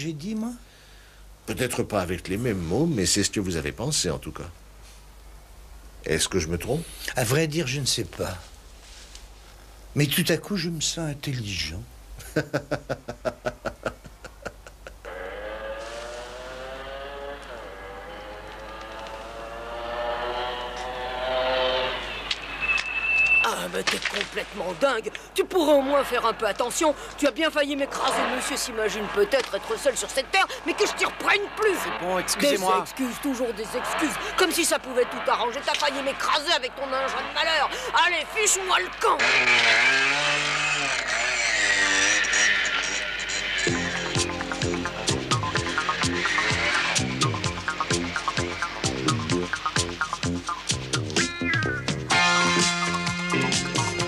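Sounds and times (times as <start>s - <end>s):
man laughing: 12.2s - 15.1s
motorcycle engine approaching: 15.0s - 22.6s, 33.6s - 54.0s
music: 43.7s - 54.0s.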